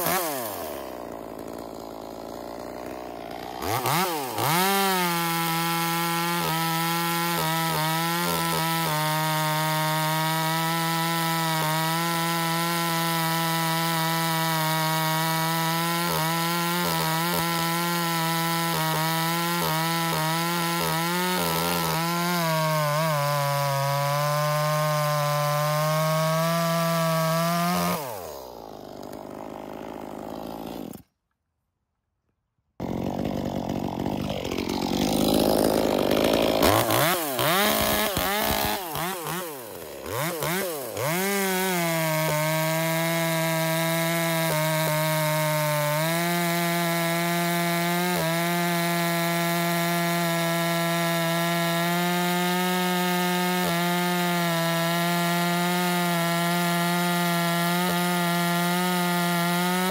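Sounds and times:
chainsaw cutting through log: 0.0s - 31.2s, 32.8s - 59.9s.

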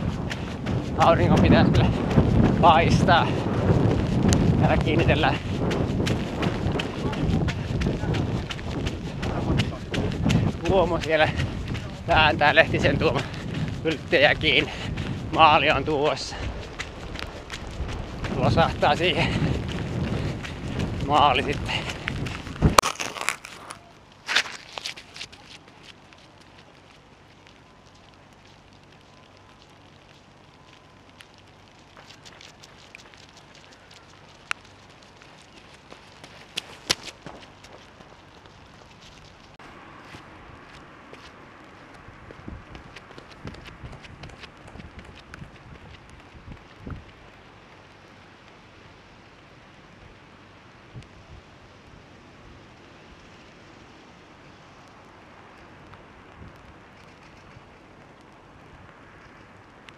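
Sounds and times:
outdoor noise floor: 0.0s - 59.9s
small clicks and crackles: 16.4s - 18.4s, 21.4s - 39.6s, 52.8s - 59.9s.

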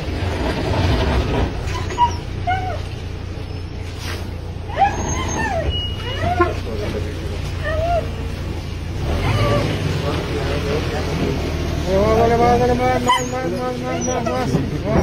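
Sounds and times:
truck engine running: 0.0s - 15.0s
dog whining and whimpering: 1.6s - 3.0s, 4.6s - 6.7s, 7.5s - 8.3s, 9.2s - 9.8s, 12.9s - 15.0s.

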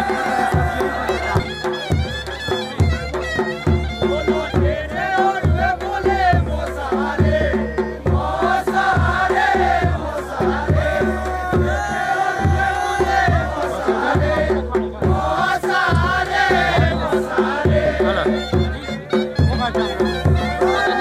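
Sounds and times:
steady drum beat: 0.0s - 21.0s.

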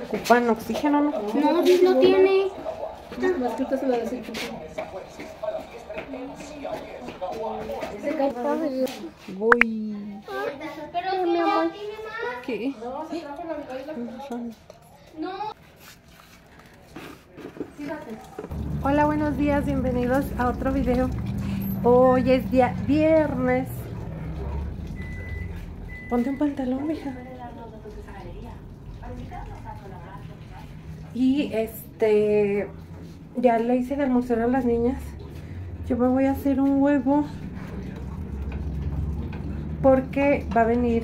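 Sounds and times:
indistinct voices talking: 18.5s - 41.0s
low room rumble: 18.5s - 41.0s.

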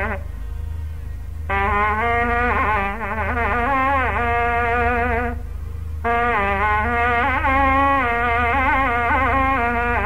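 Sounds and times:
reedy double-reed wind melody: 0.0s - 10.0s
steady low hum: 0.0s - 10.0s.

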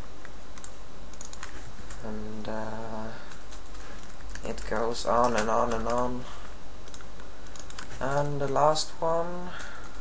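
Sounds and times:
steady low hum: 0.0s - 10.0s
computer keyboard keys tapped: 0.2s - 1.6s, 3.3s - 6.1s, 6.8s - 8.6s.

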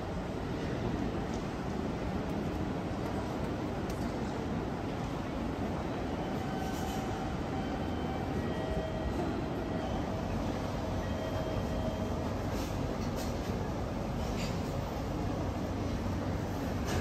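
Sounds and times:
train running through station: 0.0s - 17.0s
train wheel squeals: 6.1s - 13.4s.

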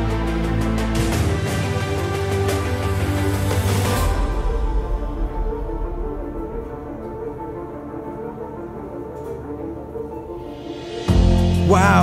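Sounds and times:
soft instrumental music: 0.0s - 12.0s.

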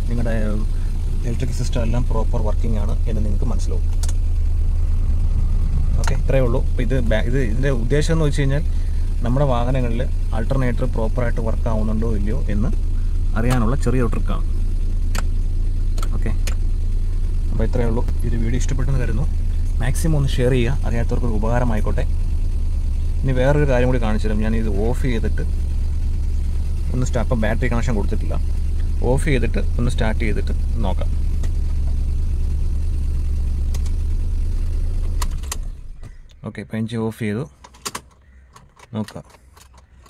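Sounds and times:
car engine idling: 0.0s - 40.0s
sharp clicks: 3.9s - 4.2s, 15.1s - 16.6s, 33.7s - 34.0s, 35.0s - 36.4s, 37.6s - 40.0s.

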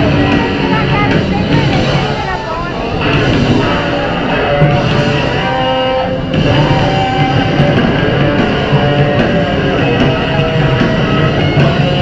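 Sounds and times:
bass droning: 0.0s - 12.0s
distorted electric guitar: 0.0s - 12.0s.

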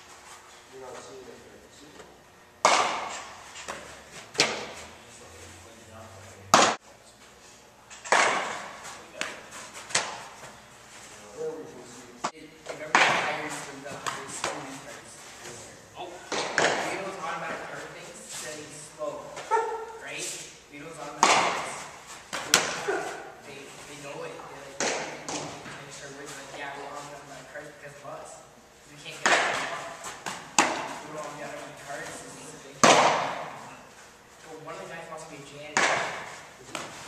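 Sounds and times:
baseball smacking into glove: 2.6s - 3.8s, 8.0s - 10.3s.

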